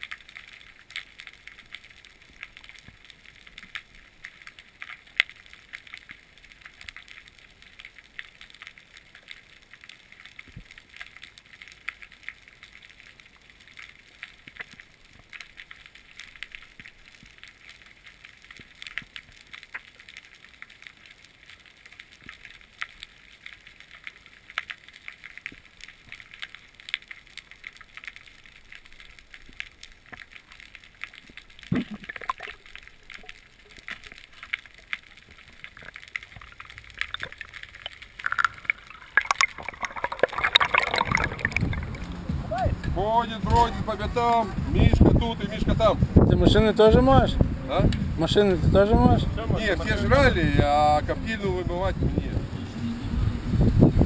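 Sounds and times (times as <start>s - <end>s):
underwater crackle of small clicks: 0.0s - 42.2s.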